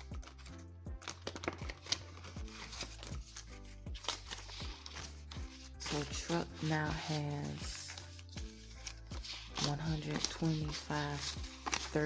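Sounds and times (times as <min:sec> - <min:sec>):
background music: 0:00.0 - 0:12.0
banknotes rustling in plastic pouch: 0:00.0 - 0:12.0.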